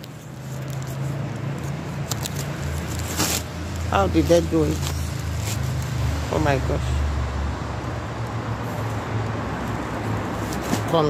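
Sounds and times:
street traffic engine hum: 0.0s - 11.0s.

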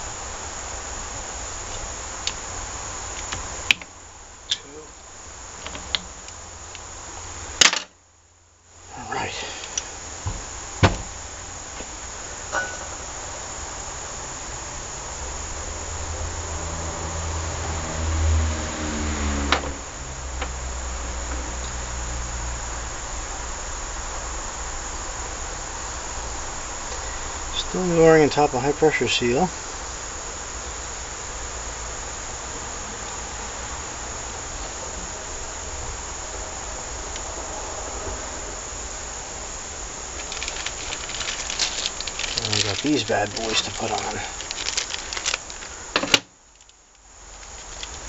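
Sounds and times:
steady high hiss: 0.0s - 48.0s.

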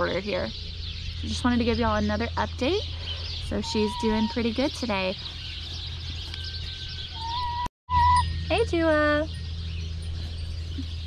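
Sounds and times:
hen calling: 2.8s - 8.2s
steady low hum: 8.2s - 11.0s.

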